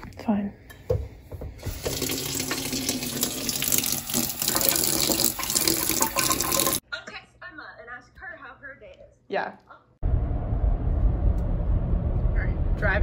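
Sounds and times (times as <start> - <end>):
faucet running into metal sink: 1.6 - 6.8.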